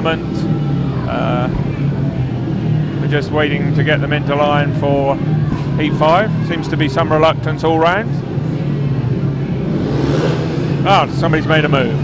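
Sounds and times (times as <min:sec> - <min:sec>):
motorcycle engines running: 0:00.0 - 0:12.0.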